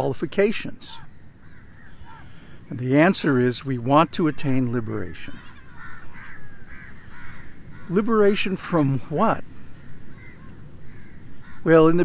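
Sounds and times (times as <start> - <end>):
crows cawing: 0.9 - 2.8, 4.0 - 8.5, 9.1 - 12.0.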